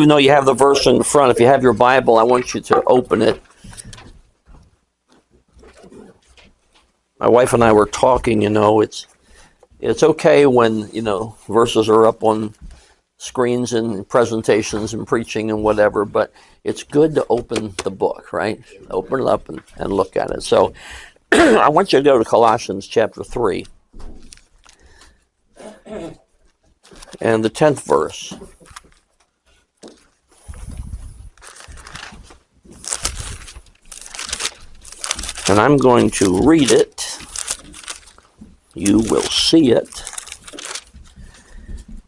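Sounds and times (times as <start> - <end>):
pages being leafed through: 29.9 - 41.5.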